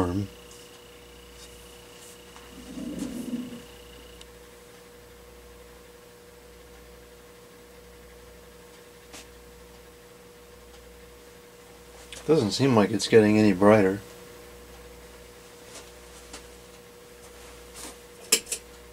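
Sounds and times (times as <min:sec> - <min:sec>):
faint electrical hum: 0:00.0 - 0:18.9.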